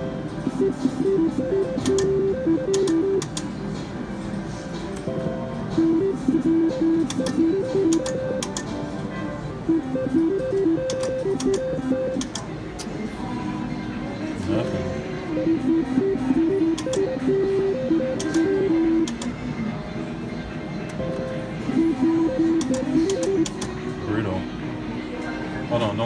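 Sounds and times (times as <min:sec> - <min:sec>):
slot machine electronic melody: 0:00.0 - 0:03.5, 0:05.1 - 0:12.4, 0:14.5 - 0:19.4, 0:20.9 - 0:23.7
casino noise: 0:05.8 - 0:08.7, 0:09.7 - 0:12.4, 0:14.5 - 0:19.4, 0:21.2 - 0:23.8.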